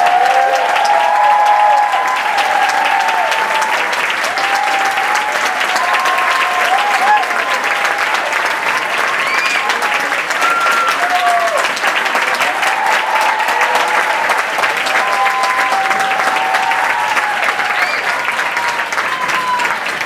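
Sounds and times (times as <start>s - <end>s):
audience applauding: 0.0s - 20.0s
people whooping and cheering: 0.0s - 20.0s.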